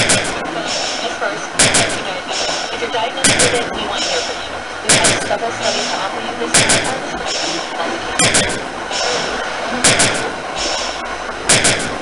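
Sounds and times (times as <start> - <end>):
harsh clattering bursts: 0.0 - 12.0
steady hiss: 0.0 - 12.0.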